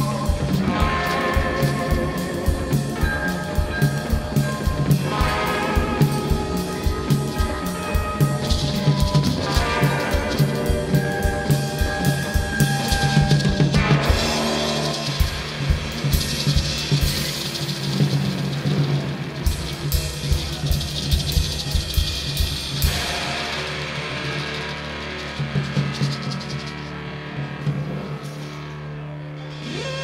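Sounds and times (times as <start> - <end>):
drum kit beating: 0.0 - 30.0.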